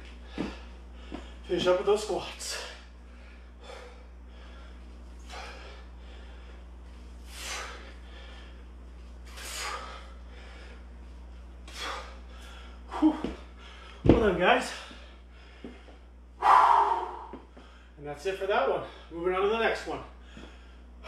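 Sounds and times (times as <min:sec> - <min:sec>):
man breathing hard: 0:00.2 - 0:01.5, 0:02.4 - 0:11.0, 0:11.6 - 0:18.0, 0:20.1 - 0:21.0.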